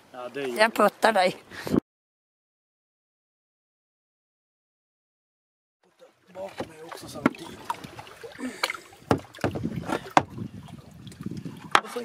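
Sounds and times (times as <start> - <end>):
water sloshing around hull: 5.8 - 12.0
kayak knocking against rocks: 6.3 - 12.0.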